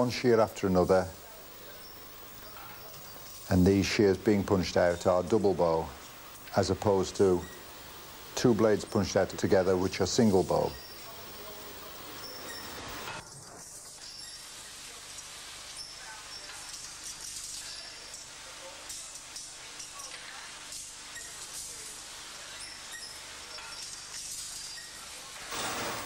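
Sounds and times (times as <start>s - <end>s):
blanking press machinery noise: 0.0s - 13.2s
clinks of steel blanks: 22.6s - 25.0s.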